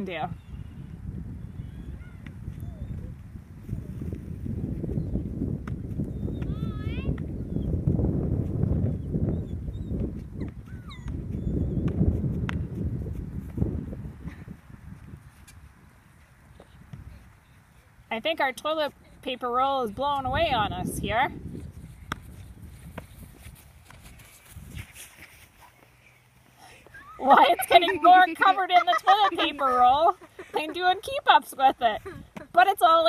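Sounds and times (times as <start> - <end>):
wind buffeting microphone: 0.0 - 18.0, 18.9 - 25.5.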